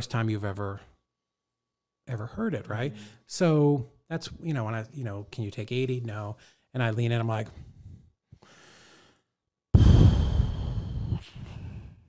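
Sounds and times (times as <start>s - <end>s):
man sighing: 9.8s - 11.9s.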